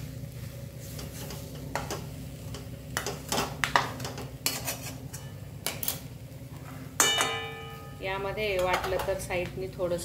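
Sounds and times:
metal spatula scraping a pan: 4.4s - 5.3s.

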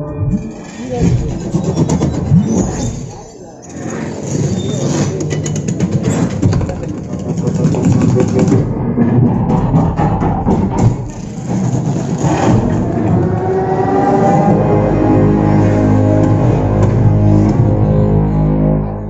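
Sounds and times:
deep sound effects: 0.0s - 19.0s
loud film music: 0.0s - 19.0s
rapid clicking strokes: 4.3s - 8.7s.

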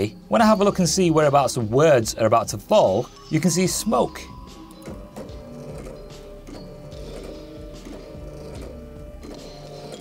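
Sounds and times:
background music: 0.0s - 10.0s
stepper motors whirring: 4.8s - 10.0s.

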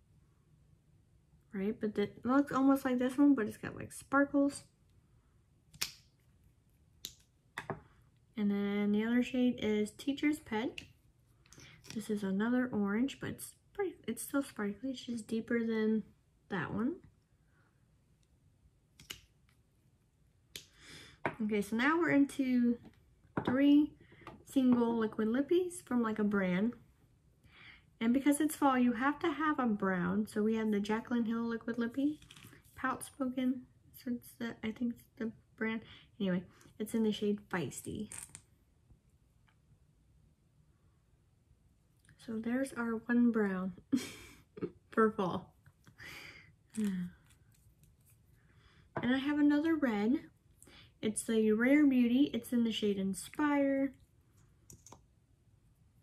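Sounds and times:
soft rustle: 46.8s - 48.5s.

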